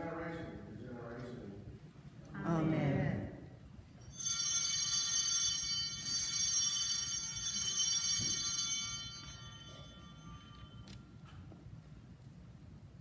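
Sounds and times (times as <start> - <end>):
small bells ringing: 4.0 - 11.5.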